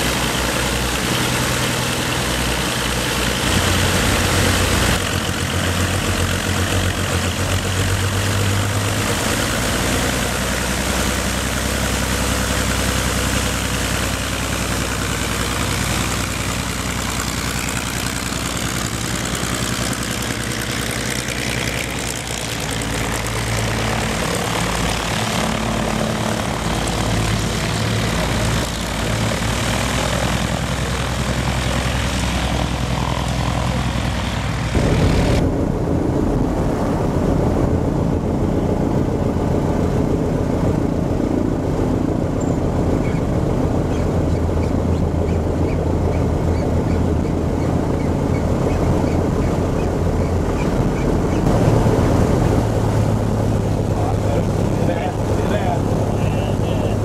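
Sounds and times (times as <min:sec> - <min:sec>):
aircraft engine and propeller drone: 0:00.0 - 0:57.0.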